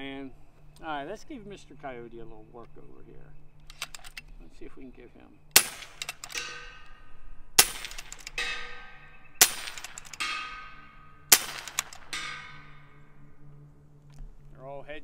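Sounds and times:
air rifle shots: 5.5 - 7.0, 7.6 - 13.1
bullet clanging on steel target: 5.5 - 13.7.

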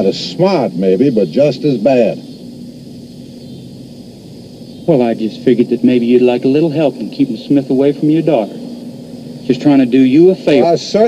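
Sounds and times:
man speaking: 0.0 - 2.3, 4.9 - 8.6, 9.4 - 11.0
faint low hum and hiss: 0.0 - 11.0.

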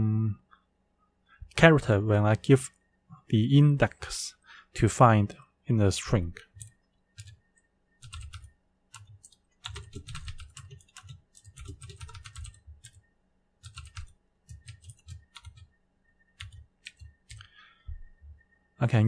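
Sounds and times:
typing on computer keyboard: 6.6 - 7.4, 8.0 - 13.0, 13.6 - 15.7, 16.4 - 17.5.

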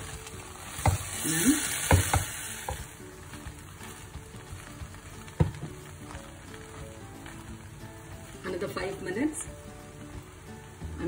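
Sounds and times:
spatula stirring rice in pan: 0.0 - 8.4
faint sizzle from pan: 0.0 - 11.0
spatula knocking against pan: 1.8 - 2.9.

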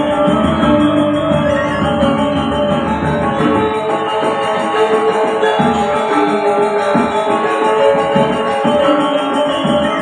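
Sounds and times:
gamelan metallophones and gongs: 0.0 - 10.0.

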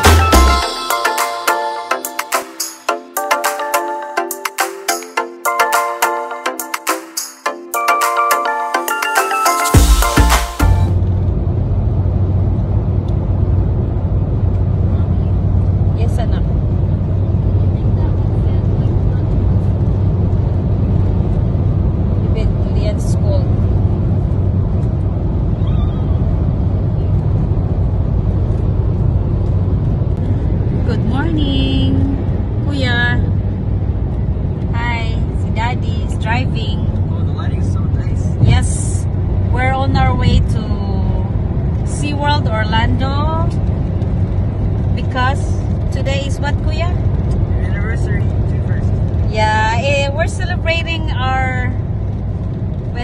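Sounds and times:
road and engine rumble in car: 9.8 - 53.0
people talking: 16.0 - 16.5, 17.6 - 19.4, 22.3 - 23.5, 30.8 - 33.3, 34.7 - 43.6, 45.0 - 47.0, 47.6 - 51.8.

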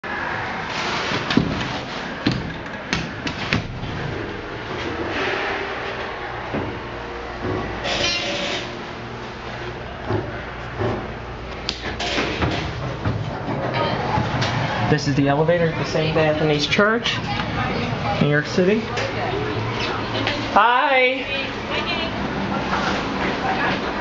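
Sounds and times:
elevator running hum: 0.0 - 24.0.

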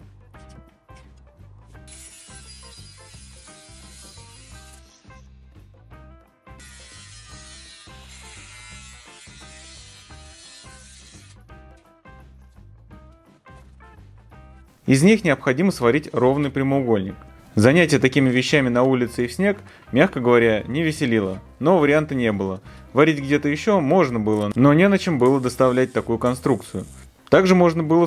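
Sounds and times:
angle grinder cutting steel: 1.9 - 5.5, 6.6 - 11.5, 25.1 - 27.1.

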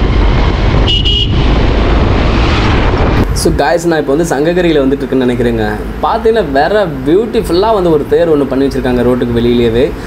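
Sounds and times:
wind noise on microphone: 0.0 - 4.0
vehicle horn toot: 0.8 - 1.4.

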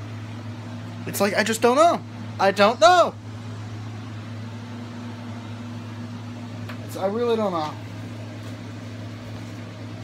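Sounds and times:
machine hum with hiss: 0.0 - 10.0.

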